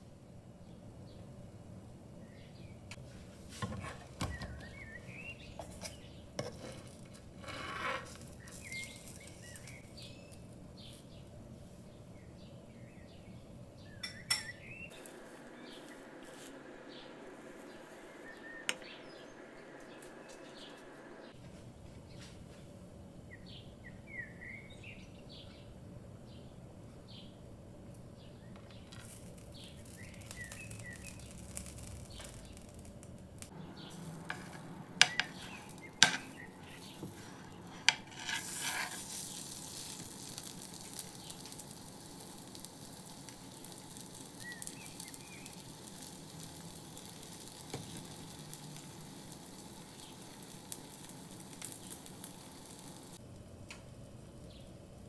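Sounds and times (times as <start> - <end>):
wrap sizzling in a frying pan: 3.4 - 11.0, 14.0 - 20.8, 28.6 - 53.2
faint bird chirps: 4.2 - 6.2, 8.3 - 11.3, 11.9 - 21.4, 23.3 - 25.7, 29.4 - 31.4
spatula scraping frying pan: 5.6 - 9.8, 33.9 - 40.5.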